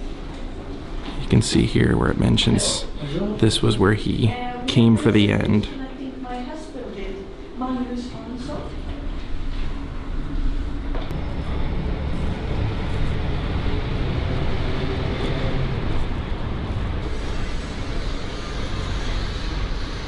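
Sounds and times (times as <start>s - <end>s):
traffic noise: 9.6s - 20.0s.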